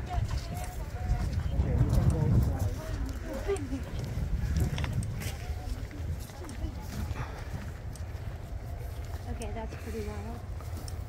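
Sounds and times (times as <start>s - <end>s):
faint voices talking: 0.0s - 11.0s
wind rumble on microphone: 0.0s - 11.0s.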